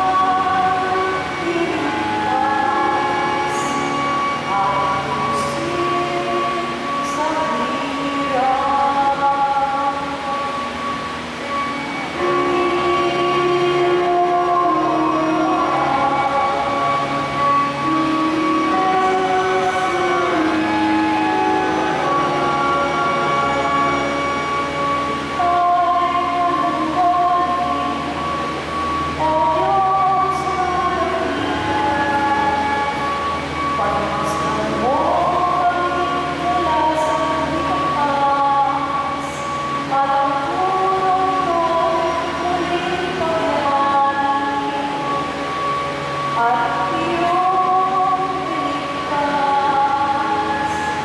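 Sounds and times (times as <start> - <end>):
sustained accompanying tone: 0.0 - 51.0
woman singing into microphone: 0.0 - 51.0.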